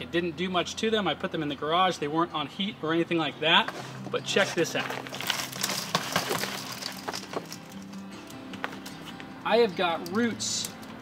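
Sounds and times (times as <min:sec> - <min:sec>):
bark and soil pouring: 0:04.1 - 0:08.4.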